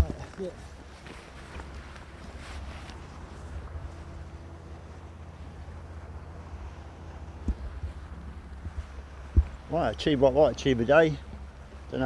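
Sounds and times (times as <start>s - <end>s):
wind buffeting microphone: 1.5s - 12.0s.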